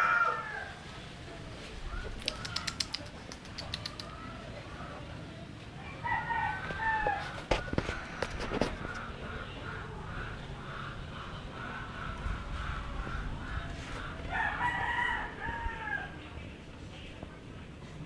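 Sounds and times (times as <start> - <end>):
rooster crowing: 0.0 - 0.8, 5.8 - 7.6, 14.2 - 16.2.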